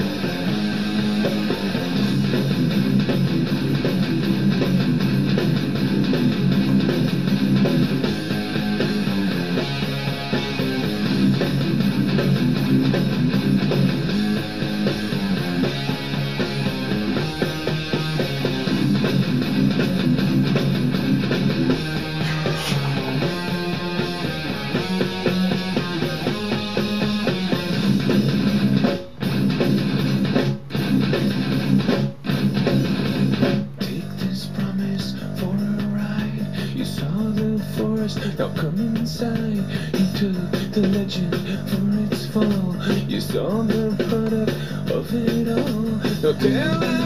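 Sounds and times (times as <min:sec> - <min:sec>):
instrumental rock music: 0:00.0 - 0:47.0.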